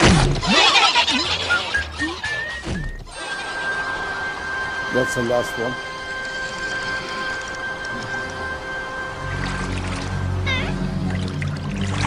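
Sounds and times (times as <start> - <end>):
squeaky cartoon animal calls: 0.4 - 2.6, 10.5 - 10.8
high held tone: 1.8 - 10.9.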